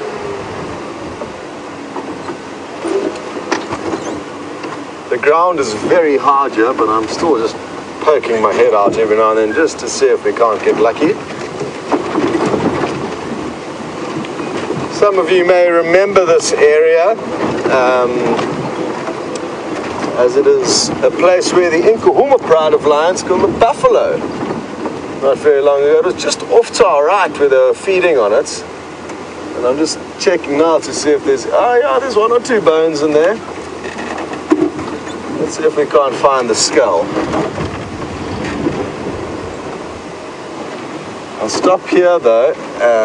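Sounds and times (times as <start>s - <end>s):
vehicle body rattling: 1.1s - 28.4s, 29.1s - 40.0s.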